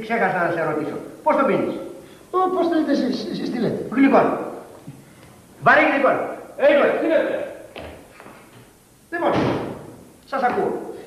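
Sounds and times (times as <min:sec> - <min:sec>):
door slamming shut: 0:09.2 - 0:10.0.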